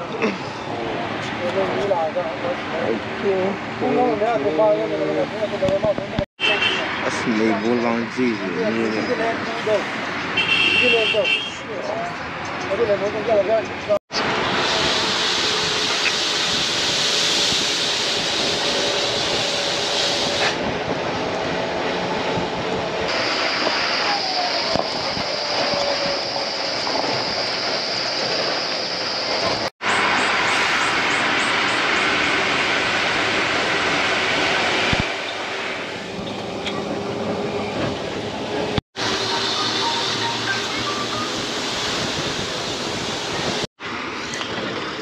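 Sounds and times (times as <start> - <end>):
bus engine and road rumble: 0.0 - 45.0.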